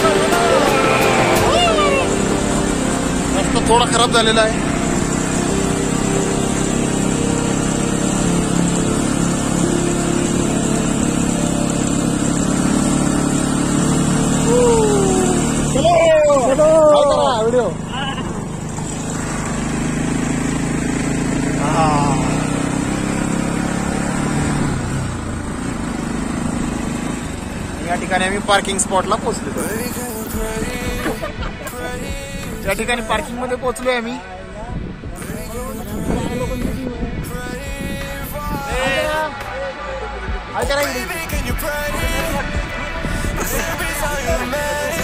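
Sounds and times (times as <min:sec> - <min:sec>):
motorcycle engine running: 0:00.0 - 0:45.0.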